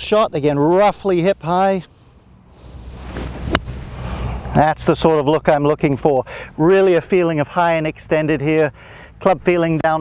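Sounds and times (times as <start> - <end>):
golf club striking ball: 3.1 - 3.8.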